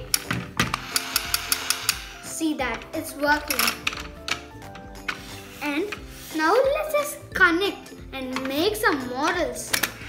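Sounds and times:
plastic toy gears clicking: 0.0s - 2.3s, 3.4s - 5.3s, 9.2s - 10.0s
background music: 0.0s - 10.0s.

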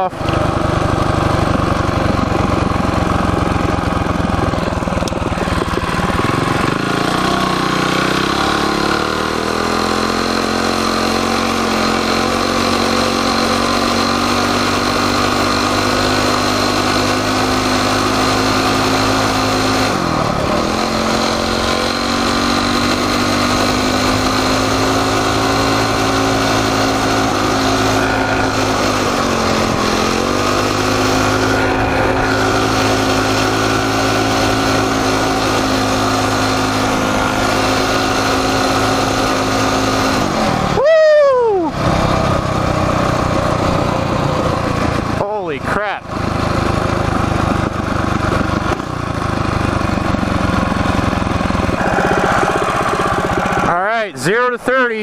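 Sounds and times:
minibike engine pulling: 0.0s - 40.8s, 41.6s - 55.0s.

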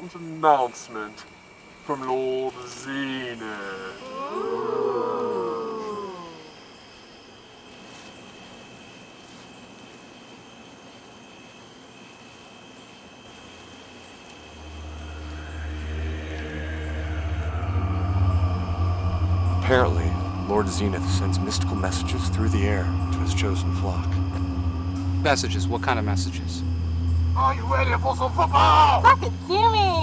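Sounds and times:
faint high whine: 14.2s - 30.0s
deep rumbling drone: 14.4s - 30.0s
warbling wavering tone: 14.4s - 30.0s.

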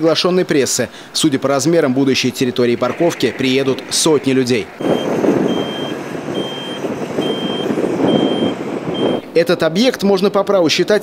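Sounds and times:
roller engine running: 0.5s - 9.4s
reversing alarm beeping: 4.8s - 9.3s.

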